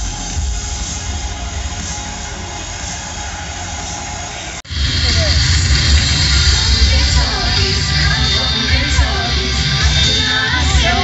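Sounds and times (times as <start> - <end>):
heavy rumbling bass effect: 4.6 - 11.0.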